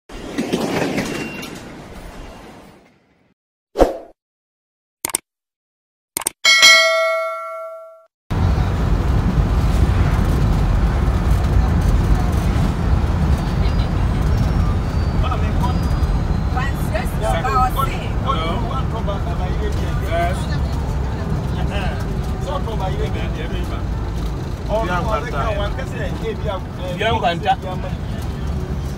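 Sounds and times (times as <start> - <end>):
bell-like chime: 6.5 - 8.1
vehicle rumbling on paved road: 8.3 - 28.9
voices talking: 13.2 - 28.8.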